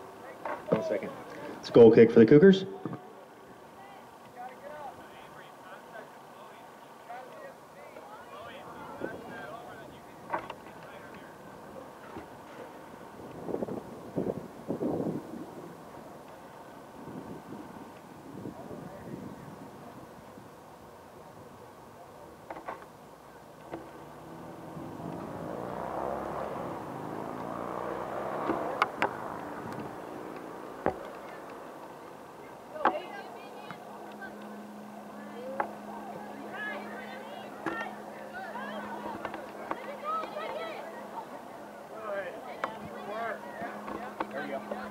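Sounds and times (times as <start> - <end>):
distant voices and shouts: 0.0 - 44.9
swell of noise: 23.2 - 44.9.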